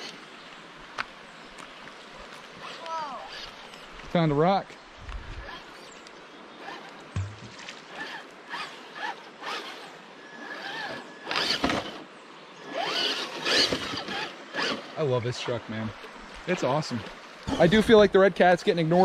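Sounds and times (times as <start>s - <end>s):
toy car electric motor whining: 8.0s - 12.0s, 12.7s - 14.8s.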